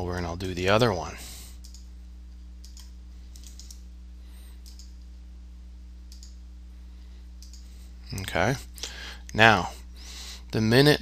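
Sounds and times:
steady low hum: 0.0s - 11.0s
faint computer mouse clicks: 4.6s - 4.9s, 6.1s - 6.4s, 7.4s - 7.7s.

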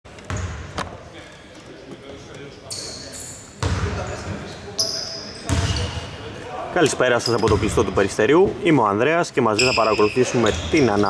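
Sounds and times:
players' voices: 0.9s - 11.0s
shoe squeaks: 2.7s - 6.2s, 7.2s - 7.6s, 9.6s - 11.0s
basketball bouncing on hardwood: 5.5s - 5.8s.

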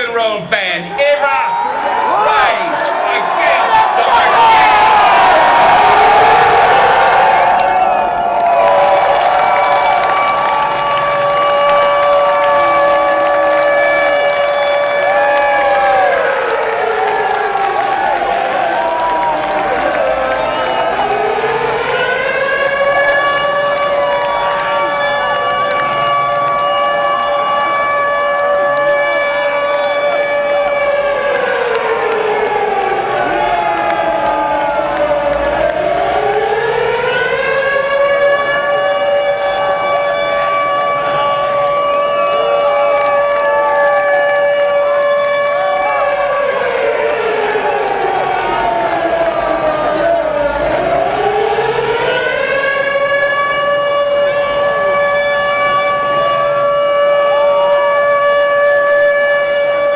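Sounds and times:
crowd chattering and shouting: 0.0s - 11.3s, 17.6s - 31.6s, 32.9s - 36.4s, 45.6s - 59.5s
air-raid siren wailing: 1.5s - 59.9s.

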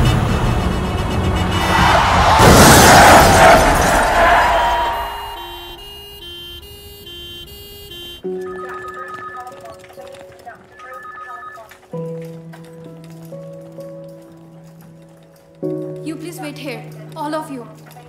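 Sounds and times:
two-note electronic tone: 4.6s - 9.7s, 10.7s - 11.7s.

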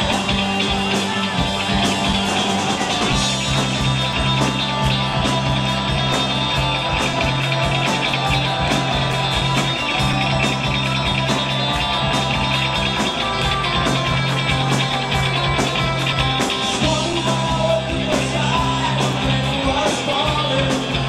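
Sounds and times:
rock band playing live: 0.0s - 21.0s
steady drum beat: 0.0s - 21.0s.

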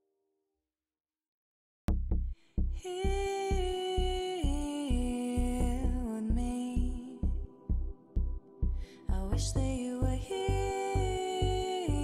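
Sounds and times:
deep bass beat: 1.9s - 12.0s
chillout lounge music: 2.7s - 12.0s.

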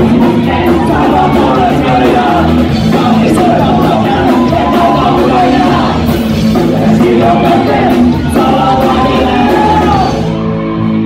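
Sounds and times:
drums and cymbals: 0.0s - 10.4s
distorted guitars: 0.0s - 11.0s
person singing: 0.0s - 11.0s.

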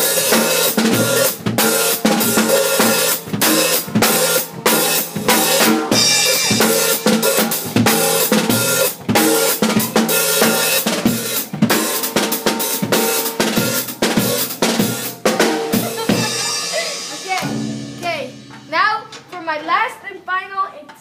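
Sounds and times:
drum kit played fast: 0.0s - 19.6s.

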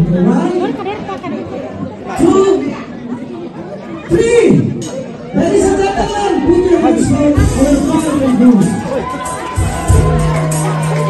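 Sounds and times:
low chatter of people: 0.0s - 11.0s.

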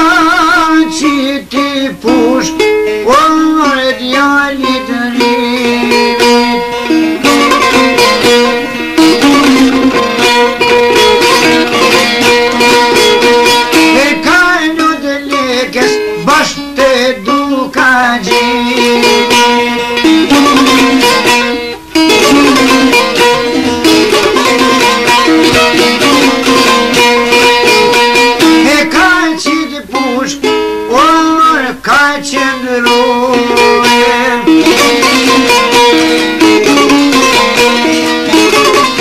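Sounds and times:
plucked lute folk music: 0.0s - 39.0s.

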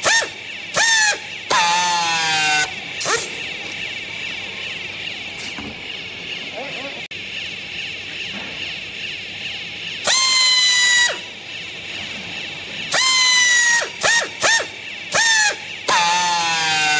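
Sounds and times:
pneumatic tool air motor whining: 0.0s - 6.9s, 9.9s - 16.9s.

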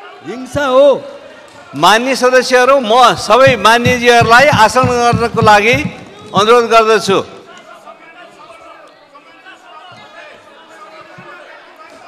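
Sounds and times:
overlapping chatter of voices: 0.0s - 12.0s.

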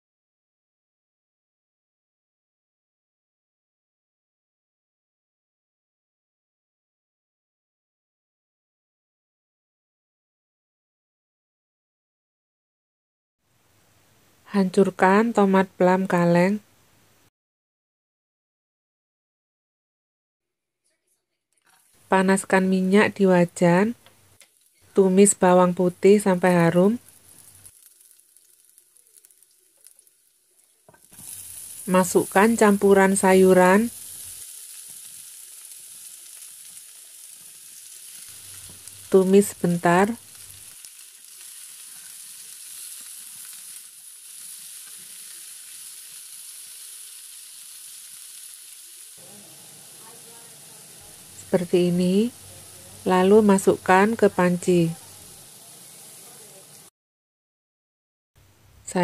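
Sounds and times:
faint steady hiss: 13.5s - 17.3s, 21.0s - 56.9s
garlic frying in oil: 21.6s - 56.9s
loud vegetable sizzle: 21.6s - 56.9s.

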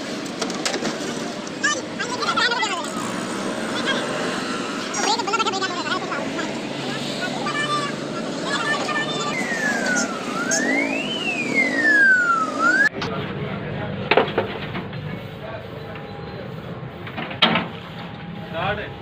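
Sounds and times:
traffic: 0.0s - 19.0s
high sliding siren tone: 1.6s - 13.0s.

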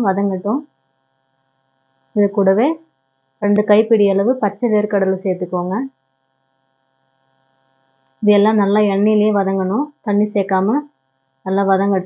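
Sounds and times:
person talking: 0.0s - 0.6s, 2.2s - 2.8s, 3.4s - 5.9s, 8.2s - 10.8s, 11.5s - 12.0s.

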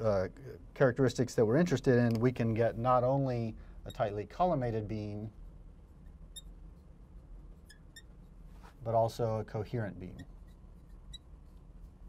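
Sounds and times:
faint low room hum: 0.0s - 12.0s
marker squeaking on glass: 3.9s - 4.2s, 5.9s - 8.4s, 10.0s - 12.0s.

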